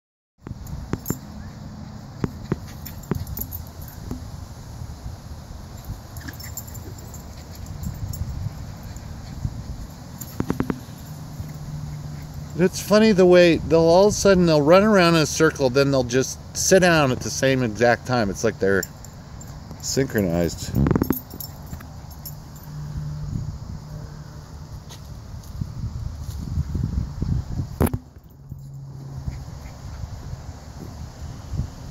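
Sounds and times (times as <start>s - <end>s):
dogs romping on grass: 1.0s - 4.4s, 5.7s - 12.6s
wind buffeting microphone: 7.6s - 11.0s, 24.8s - 28.4s.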